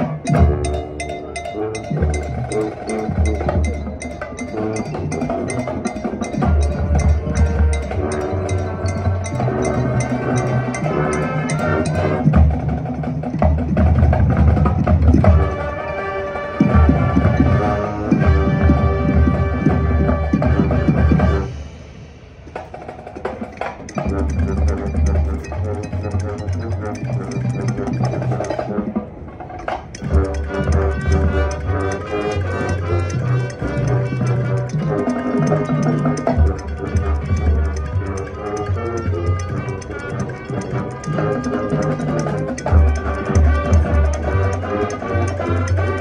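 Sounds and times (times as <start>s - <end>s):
marching band playing: 0.0s - 46.0s.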